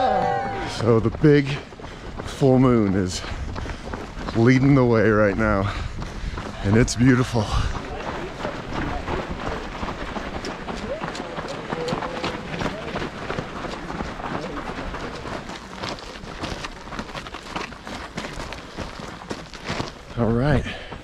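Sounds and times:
runners' footsteps on dirt: 0.0s - 21.0s.

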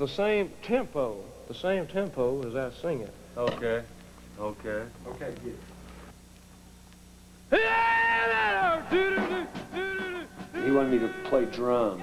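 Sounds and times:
man screaming: 7.5s - 11.6s.

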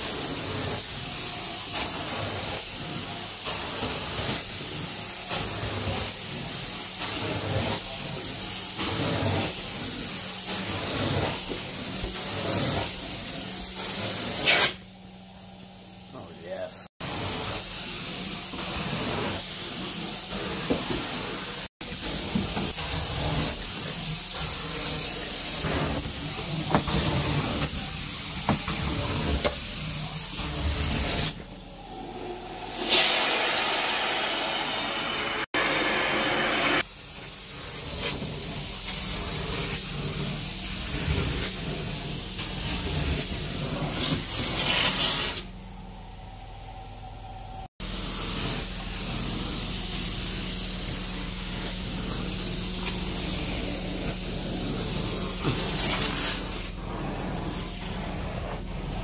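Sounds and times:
carpet extraction wand hissing: 17.0s - 31.5s, 32.4s - 45.5s, 47.8s - 59.0s.

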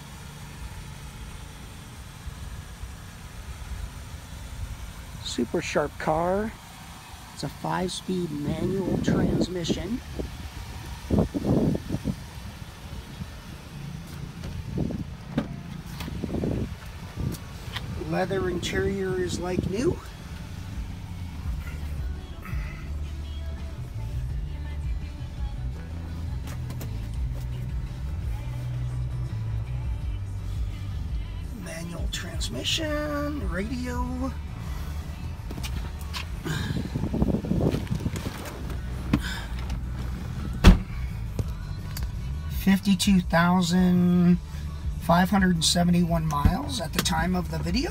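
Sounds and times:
low steady rumble: 0.0s - 47.9s
wind rumble: 10.0s - 13.5s, 14.2s - 20.1s, 36.3s - 41.1s
car door latch clicks: 40.6s - 40.9s.

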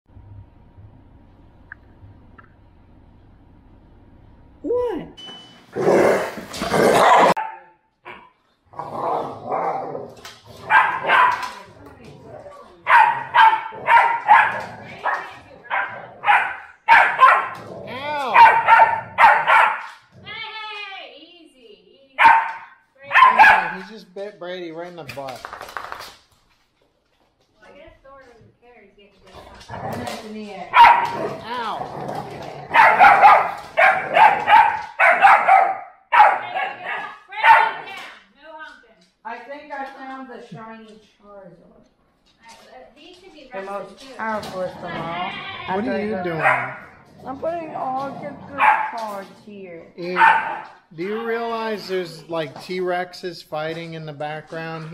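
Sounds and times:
dog barking: 6.9s - 8.3s, 10.6s - 11.6s, 12.8s - 17.6s, 18.3s - 20.0s, 22.2s - 23.8s, 30.7s - 31.4s, 32.7s - 37.9s, 46.3s - 47.0s, 48.6s - 49.0s, 50.0s - 50.9s.

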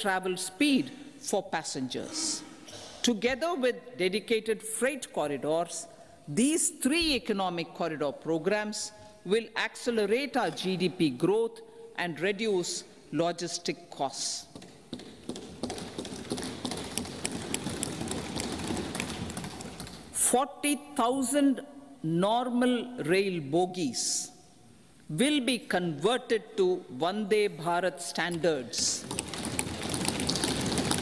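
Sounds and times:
hands thumping on wooden desks: 14.5s - 20.1s.

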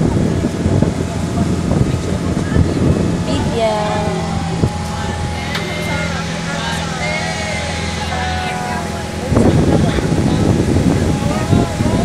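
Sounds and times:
boat engine droning: 0.0s - 12.0s
passengers chattering: 0.0s - 12.0s.

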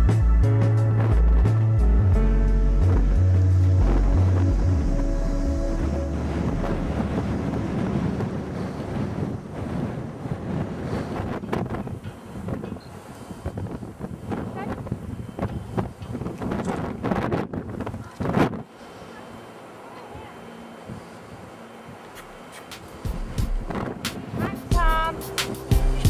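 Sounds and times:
background music: 0.0s - 9.4s, 23.0s - 26.0s
wind rumbling on microphone: 0.0s - 18.8s, 20.2s - 26.0s.

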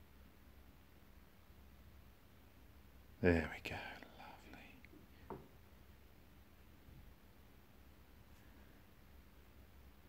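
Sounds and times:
breathy microphone noise: 0.0s - 10.0s.

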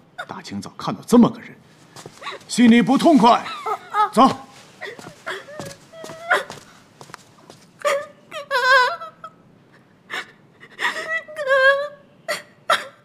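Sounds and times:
woman sobbing: 3.4s - 6.8s, 7.8s - 13.0s
woman whimpering cry: 4.8s - 6.7s, 10.2s - 13.0s.

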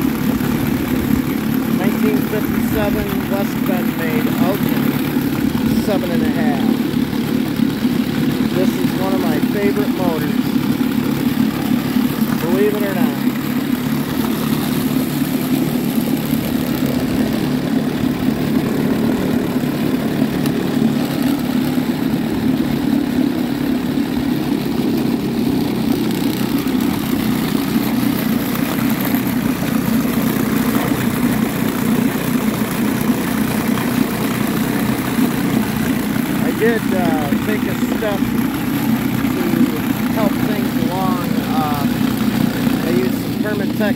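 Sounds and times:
outboard motor running: 0.0s - 43.9s.

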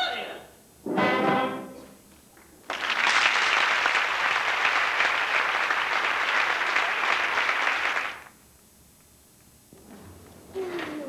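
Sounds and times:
audience applauding: 2.4s - 8.4s.

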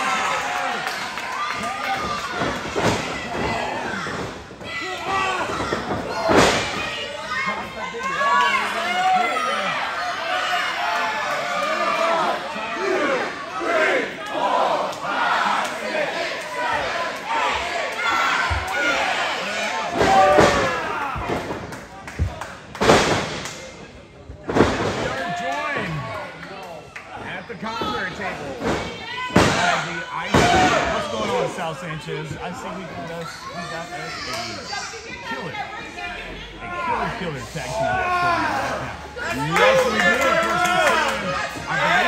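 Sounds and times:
crowd shouting and yelling: 0.0s - 42.0s.

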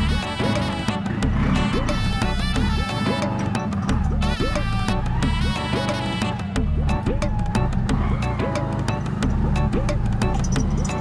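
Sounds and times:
steady bass line: 0.0s - 11.0s.

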